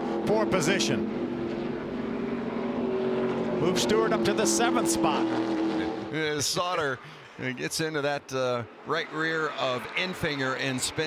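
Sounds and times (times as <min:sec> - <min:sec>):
race truck engines at speed: 0:00.0 - 0:11.0.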